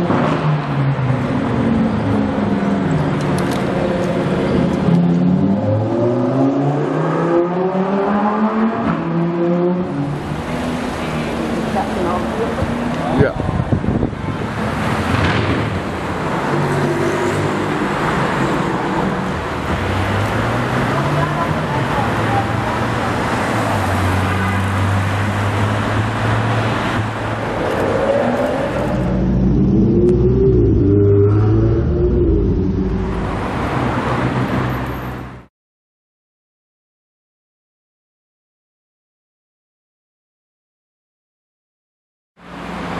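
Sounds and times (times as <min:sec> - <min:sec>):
car engines pulling away: 0:00.0 - 0:13.3, 0:14.0 - 0:35.4
road noise: 0:00.0 - 0:35.5, 0:42.4 - 0:42.9
deep engine accelerating: 0:27.2 - 0:34.4.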